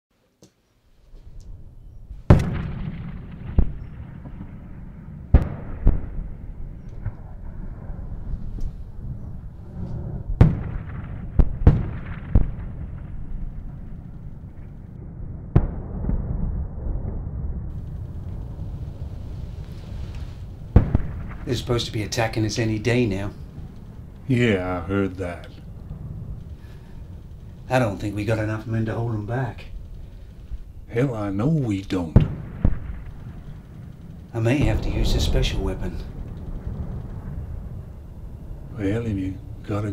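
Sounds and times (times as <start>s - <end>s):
low lingering noise: 0.8s - 39.9s
continuous low rumble: 1.1s - 39.9s
artillery explosions: 1.6s - 39.9s
sharp bangs: 2.2s - 8.6s, 10.4s - 16.3s, 17.7s - 31.3s, 32.0s - 39.8s.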